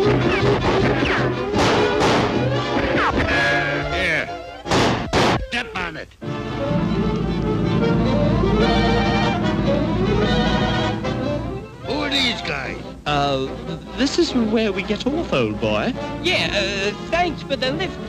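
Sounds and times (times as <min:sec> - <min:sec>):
orchestral cartoon music: 0:06.2 - 0:18.0.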